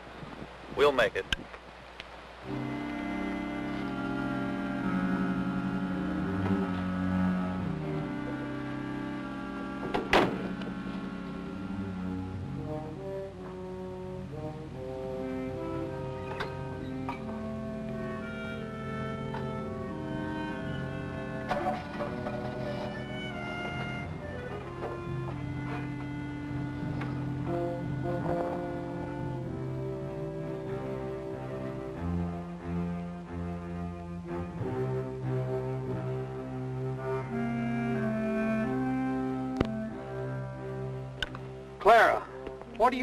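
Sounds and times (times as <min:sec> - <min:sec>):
orchestral music with brass and strings: 0:02.3 - 0:43.0
sharp thump: 0:09.9 - 0:10.6.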